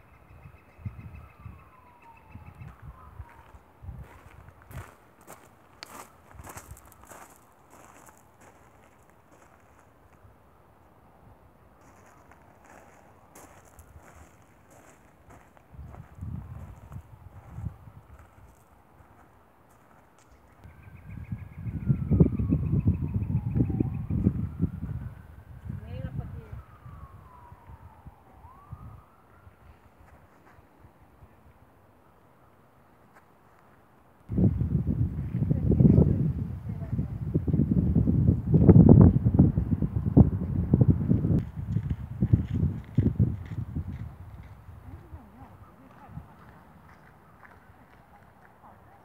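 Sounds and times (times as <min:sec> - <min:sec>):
wind buffeting microphone: 0:00.0 - 0:09.6, 0:11.3 - 0:30.2, 0:34.3 - 0:48.9
faint siren wailing: 0:00.0 - 0:33.0, 0:34.3 - 0:49.0
footsteps on gravel: 0:02.7 - 0:10.0, 0:11.8 - 0:20.4.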